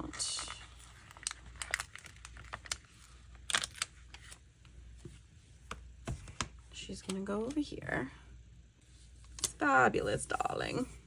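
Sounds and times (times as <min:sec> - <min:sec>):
paper sticker crinkling: 0:00.2 - 0:04.4.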